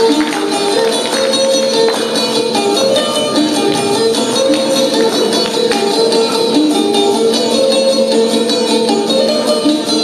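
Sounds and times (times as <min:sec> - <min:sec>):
plucked lute melody: 0:00.0 - 0:10.0.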